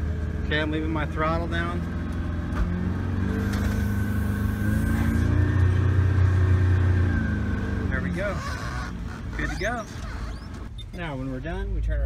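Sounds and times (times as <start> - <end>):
boat engine under throttle: 3.5 - 10.7.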